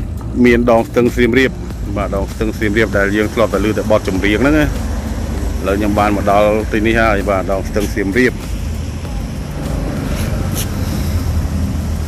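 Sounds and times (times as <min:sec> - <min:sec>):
low rumble of outdoor background: 0:00.0 - 0:12.0.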